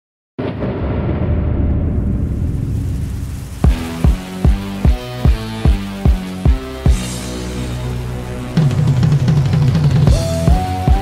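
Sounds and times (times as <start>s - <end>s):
low boom rumble: 0.4s - 5.6s
pounding kick drum: 3.6s - 7.2s.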